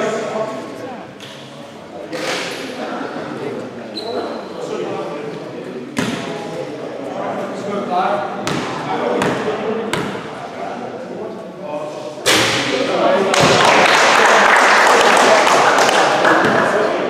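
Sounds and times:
voices of players: 0.0 - 17.0
basketball bouncing on hall floor: 8.4 - 10.3, 13.4 - 13.7, 16.4 - 16.7.

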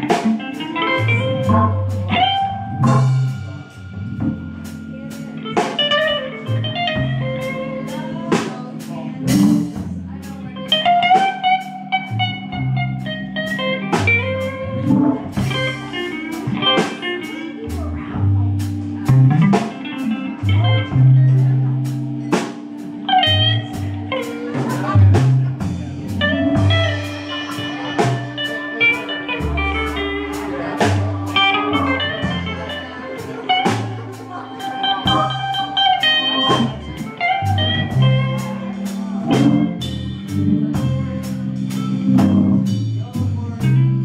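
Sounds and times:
drum kit: 0.0 - 44.0
electric guitar: 0.0 - 44.0
keyboard chords: 0.0 - 44.0.

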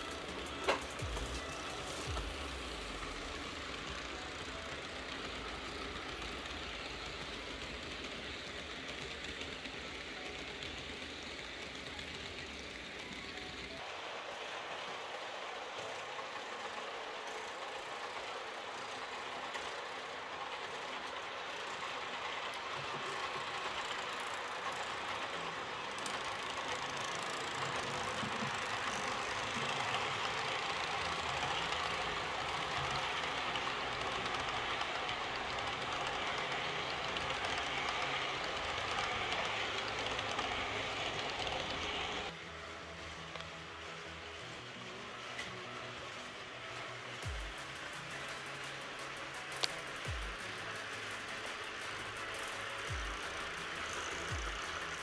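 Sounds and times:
model train wheels rumbling: 0.0 - 55.0.

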